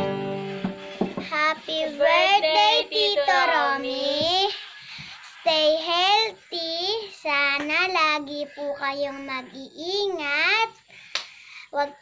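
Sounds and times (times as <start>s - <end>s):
girl singing: 1.2s - 4.6s.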